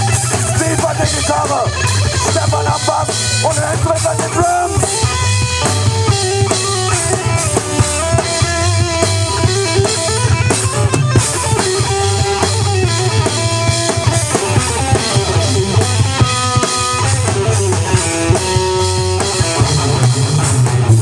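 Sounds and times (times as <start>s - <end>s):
drum kit with busy kick drum: 0.0s - 21.0s
electric guitar riffing: 0.0s - 21.0s.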